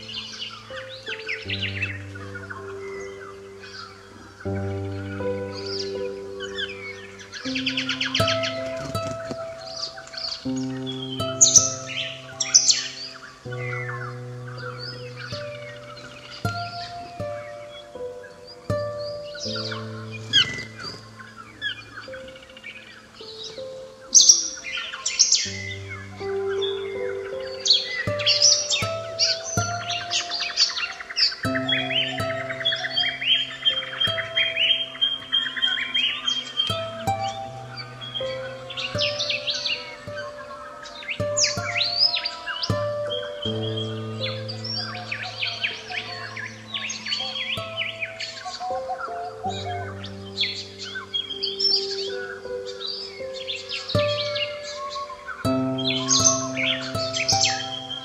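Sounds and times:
bird trill and whistle: 0.0s - 58.0s
birds chirping: 0.0s - 58.0s
soft piano and guitar music: 0.0s - 58.0s.

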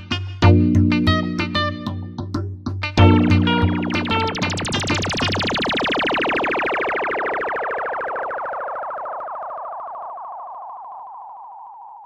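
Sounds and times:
hip-hop beat: 0.0s - 6.0s
pulsing synthesizer tone: 3.0s - 12.0s.

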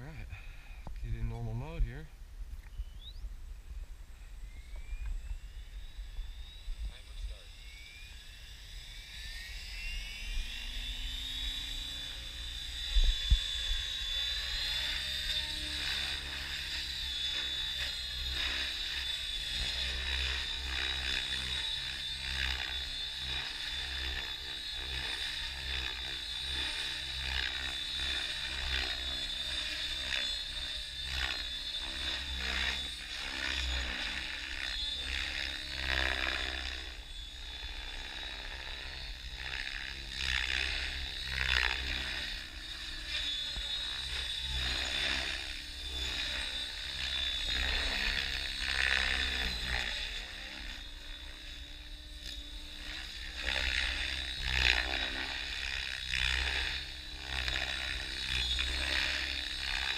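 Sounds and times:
rc helicopter whine: 0.0s - 59.9s.

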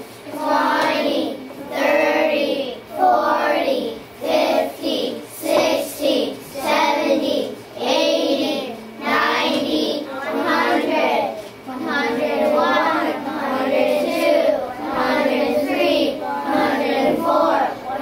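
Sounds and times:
children chanting in unison: 0.3s - 18.0s.

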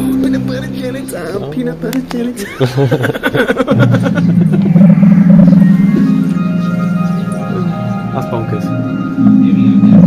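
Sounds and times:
fruit machine win music: 3.6s - 10.0s
steady low tone: 3.6s - 10.0s.

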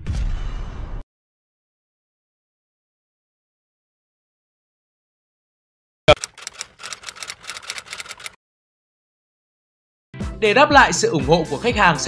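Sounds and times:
run of sharp clicks: 6.1s - 8.4s.

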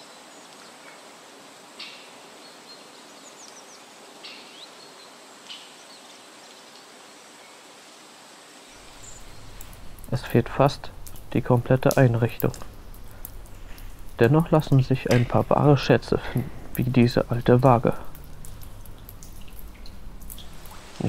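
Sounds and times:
steady outdoor hiss: 0.0s - 21.0s.

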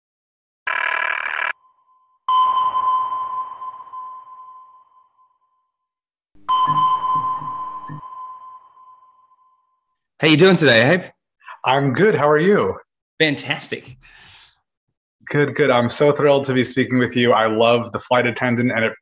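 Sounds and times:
sonar-style pings: 1.6s - 10.0s.

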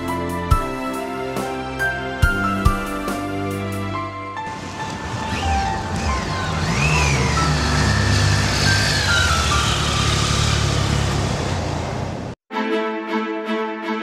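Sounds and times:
wind and road noise: 4.4s - 12.4s
motorcycles riding past: 4.5s - 12.4s.

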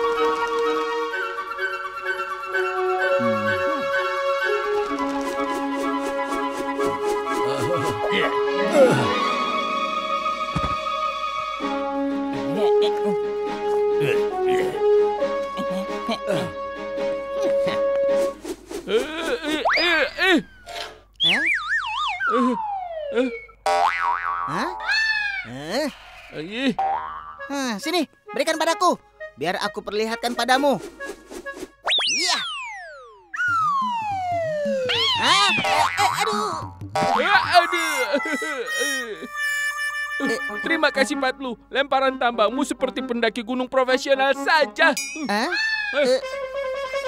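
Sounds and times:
wobbling springy cartoon tones: 19.6s - 25.2s, 31.8s - 38.4s
descending whistle: 31.9s - 35.6s
held chime-like tone: 45.0s - 45.5s.

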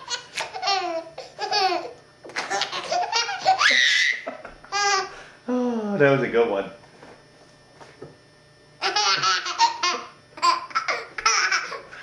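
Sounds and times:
baby laughing: 0.0s - 5.1s, 8.8s - 12.0s.

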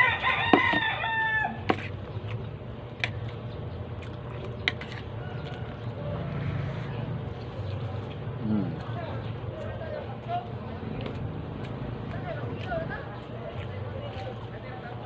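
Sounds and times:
rooster crowing: 0.0s - 1.7s, 5.2s - 7.1s.

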